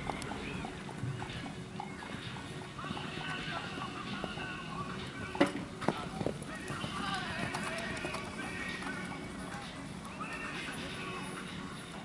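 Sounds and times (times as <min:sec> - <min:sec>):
horse hoofbeats on sand: 0:00.0 - 0:10.5
background music: 0:00.0 - 0:12.0
voices: 0:02.0 - 0:12.0.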